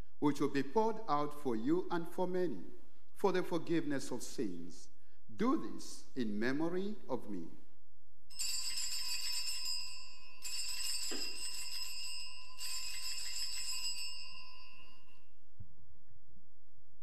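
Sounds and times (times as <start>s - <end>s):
altar bells ringing: 8.3s - 15.4s.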